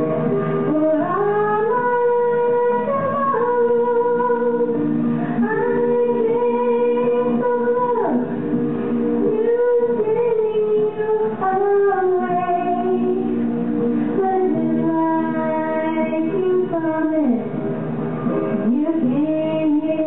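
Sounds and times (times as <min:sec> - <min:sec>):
person singing slow song: 0:00.0 - 0:08.3, 0:14.1 - 0:17.5
instrumental accompaniment: 0:00.0 - 0:20.0.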